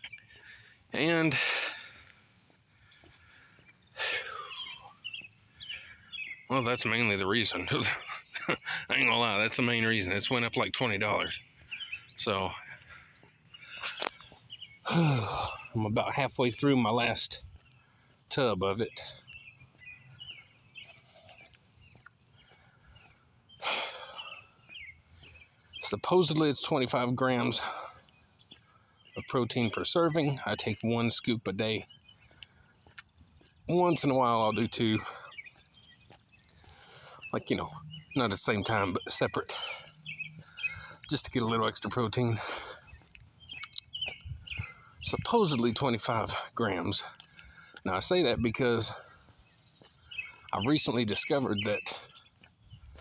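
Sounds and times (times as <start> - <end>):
faint bird chirps: 0.0 - 53.0.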